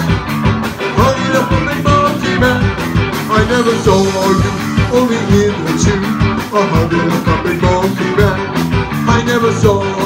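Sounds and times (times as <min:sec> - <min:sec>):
bass guitar: 0:00.0 - 0:10.0
drums: 0:00.0 - 0:10.0
electric guitar: 0:00.0 - 0:10.0
live ska band playing: 0:00.0 - 0:10.0.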